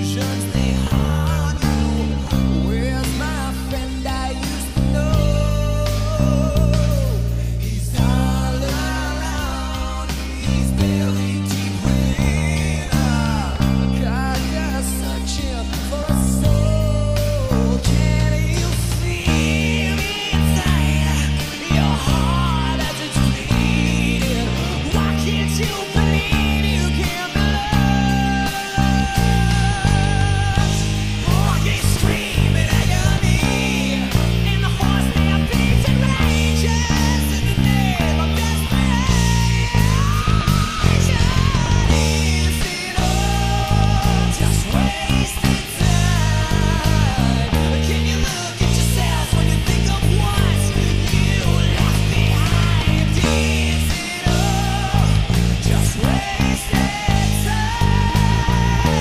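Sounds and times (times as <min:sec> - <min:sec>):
electric bass line: 0:00.0 - 0:59.0
guitars: 0:00.0 - 0:59.0
person singing: 0:00.0 - 0:59.0.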